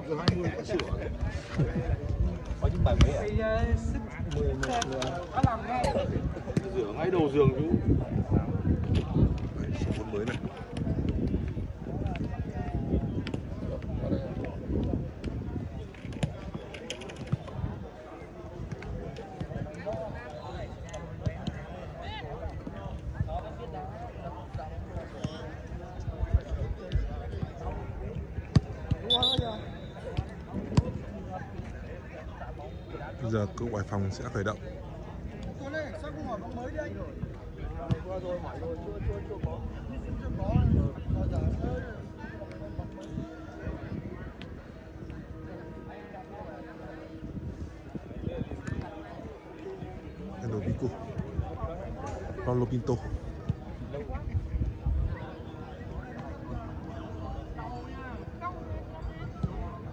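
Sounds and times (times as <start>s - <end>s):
men talking and calling out: 0.0s - 8.7s.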